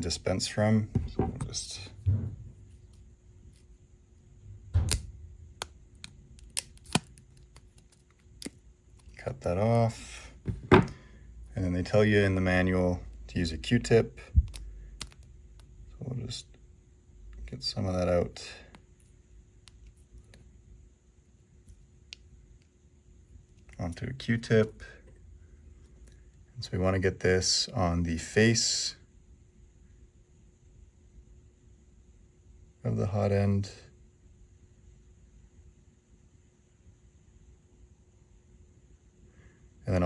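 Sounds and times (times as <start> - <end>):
faint steady hum: 0.0 - 40.0.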